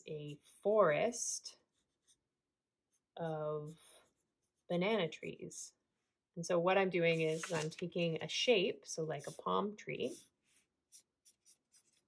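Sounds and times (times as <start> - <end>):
marker strokes on paper: 1.6 - 5.0, 6.9 - 8.0, 9.0 - 12.0.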